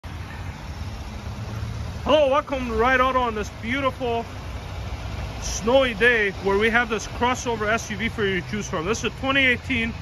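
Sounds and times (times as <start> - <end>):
car engine idling: 0.0 - 10.0
outdoor hiss: 0.1 - 10.0.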